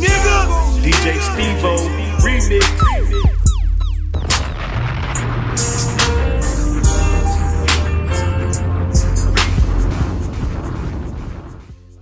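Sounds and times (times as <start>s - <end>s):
deep bass line: 0.0s - 12.0s
explosion blast: 2.7s - 12.0s.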